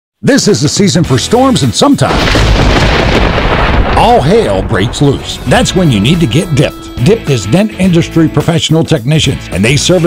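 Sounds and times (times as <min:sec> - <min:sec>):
deep thunder rumble: 0:02.1 - 0:06.9.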